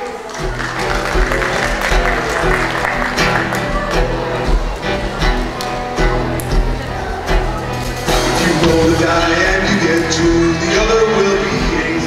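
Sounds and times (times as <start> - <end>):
acoustic guitars: 0.0 - 12.0
drums: 0.4 - 12.0.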